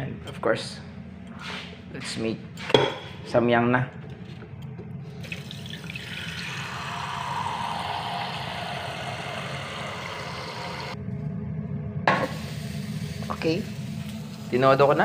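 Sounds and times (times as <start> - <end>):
tap water filling saucepan: 5.2 - 8.3.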